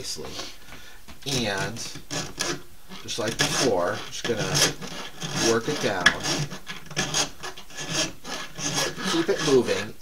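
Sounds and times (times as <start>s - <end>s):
steel file rasping on bone: 1.9s - 9.9s.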